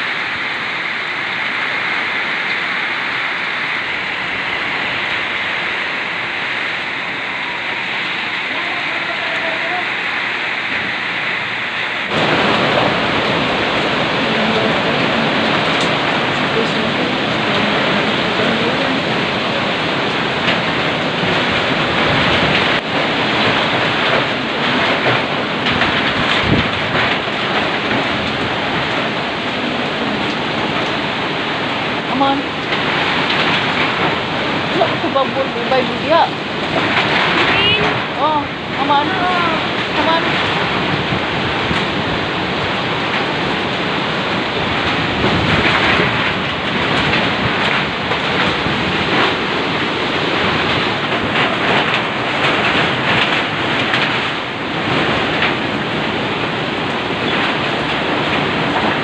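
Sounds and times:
rain on window: 0.0s - 59.0s
strong wind: 0.0s - 59.0s
knocks and rattles: 20.4s - 29.2s, 44.7s - 59.0s.

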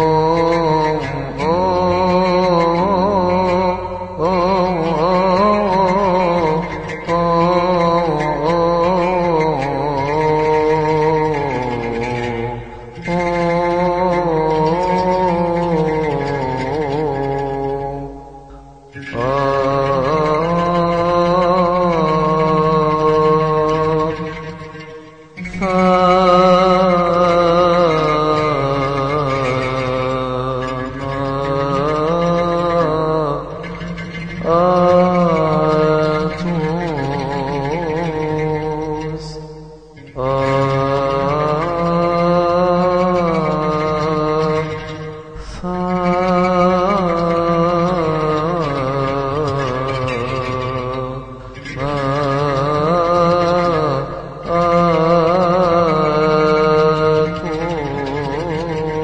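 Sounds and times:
person chanting a hymn: 0.0s - 24.5s, 25.4s - 59.0s.

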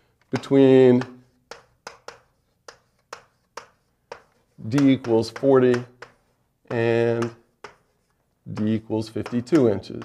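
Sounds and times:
chalk tapping on a blackboard: 0.2s - 10.0s.

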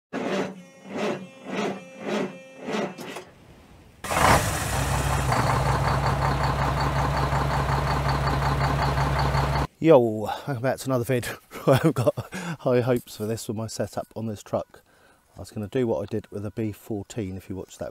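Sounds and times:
engine-like drone: 4.1s - 9.7s.

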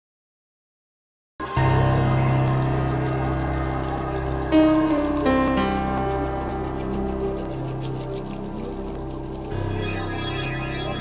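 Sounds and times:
sustained music chord: 1.6s - 11.0s.

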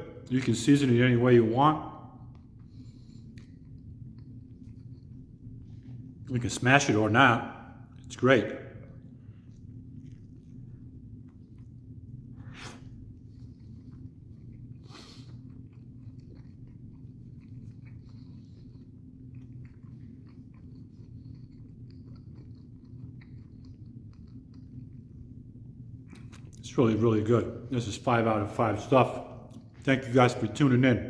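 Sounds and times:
steady low hum: 0.0s - 31.0s
person chewing food: 2.1s - 6.2s, 8.8s - 26.6s.

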